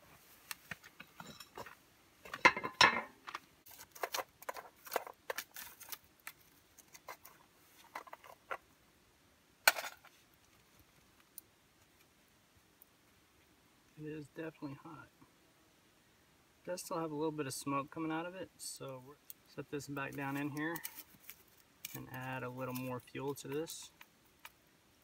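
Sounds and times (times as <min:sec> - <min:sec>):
small objects clattering: 0:00.8 - 0:08.6, 0:09.7 - 0:10.2.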